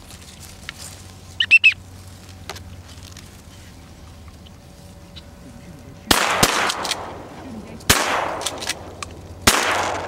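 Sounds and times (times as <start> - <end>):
high duck calls: 1.4 - 1.8.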